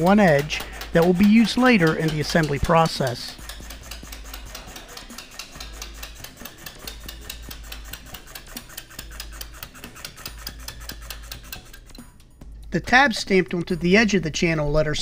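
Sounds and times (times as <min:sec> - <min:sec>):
notching machine punching metal: 0:00.0 - 0:13.0.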